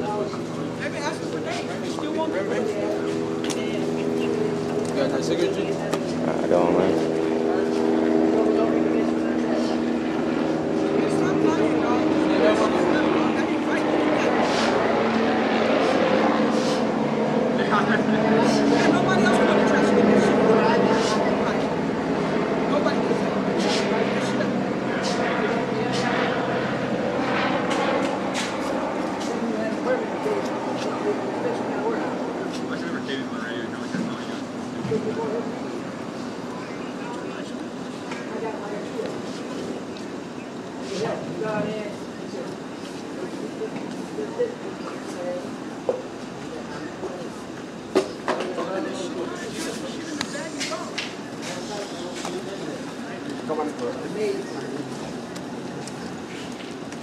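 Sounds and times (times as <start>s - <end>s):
people talking indistinctly: 0.0s - 56.6s
steady outdoor noise: 0.0s - 57.0s.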